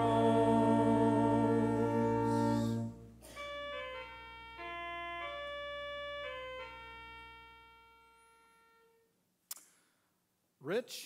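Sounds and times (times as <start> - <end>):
keyboard chord: 0.0 - 7.8
sharp click: 9.5 - 9.8.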